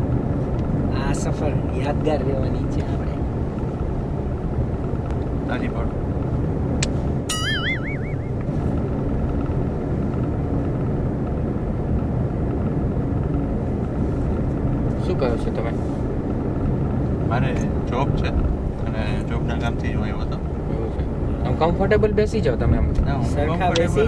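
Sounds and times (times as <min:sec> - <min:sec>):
car engine and road noise: 0:00.0 - 0:24.0
warbling rising tone: 0:07.3 - 0:08.8.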